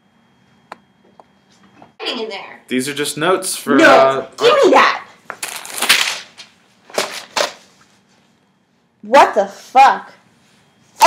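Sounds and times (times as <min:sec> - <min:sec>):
paper rustling and crackling: 0:05.4 - 0:07.7.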